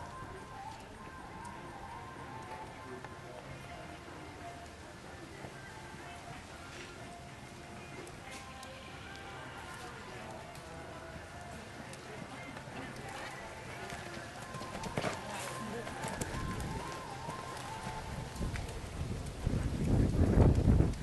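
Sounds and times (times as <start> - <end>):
distant voices: 0.0 - 20.1
wind buffeting microphone: 16.1 - 16.9, 17.8 - 21.0.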